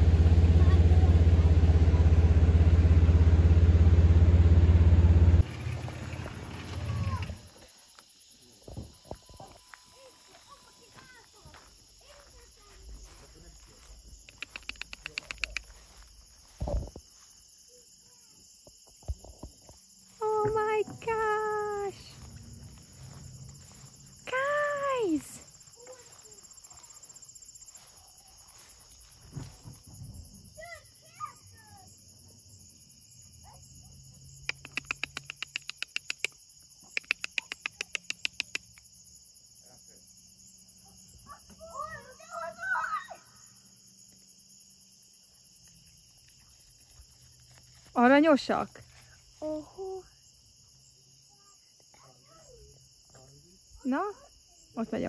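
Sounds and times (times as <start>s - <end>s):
crickets chirping: 0.0s - 55.0s.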